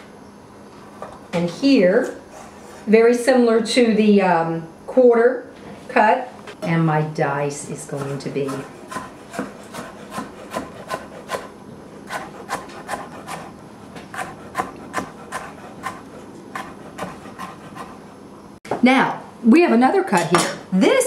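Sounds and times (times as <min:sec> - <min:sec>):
knife chopping on wooden board: 0:08.0 - 0:11.5, 0:12.1 - 0:18.0.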